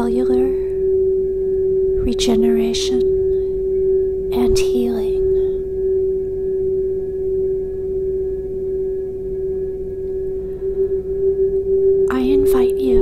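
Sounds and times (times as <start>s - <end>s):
crystal singing bowl ringing: 0.0s - 13.0s.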